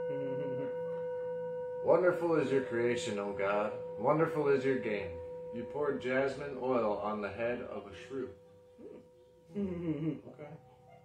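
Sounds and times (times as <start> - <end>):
steady held tone: 0.0 - 11.0.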